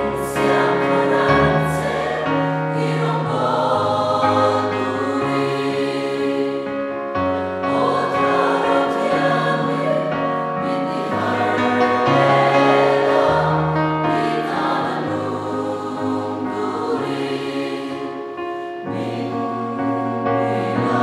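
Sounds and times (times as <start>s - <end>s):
congregation singing a hymn: 0.0s - 21.0s
keyboard accompaniment: 0.0s - 21.0s.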